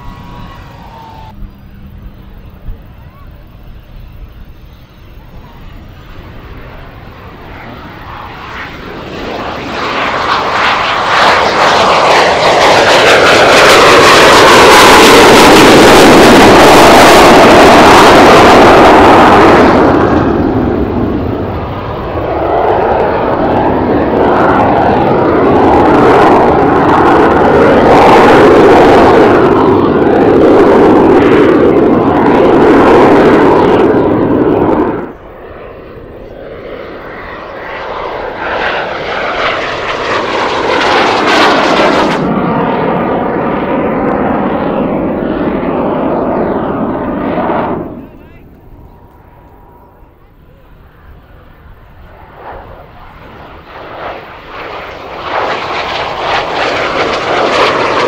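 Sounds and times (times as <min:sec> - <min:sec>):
jet fly-past: 0:00.0 - 0:58.0.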